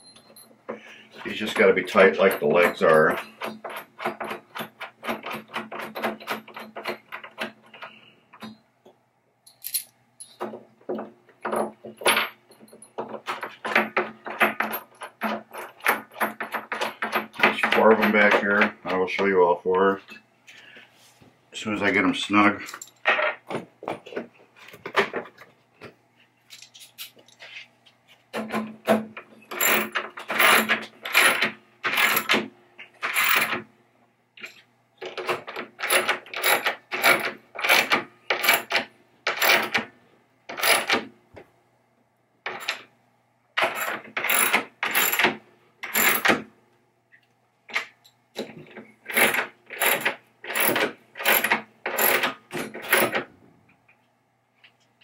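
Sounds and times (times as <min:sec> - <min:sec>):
hand wrench ratcheting: 0:29.5 - 0:32.4, 0:35.0 - 0:39.9, 0:43.6 - 0:46.4, 0:49.1 - 0:53.2.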